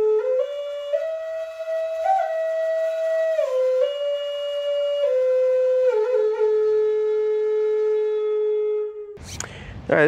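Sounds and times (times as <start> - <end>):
wind instrument slow melody: 0.0 - 9.2.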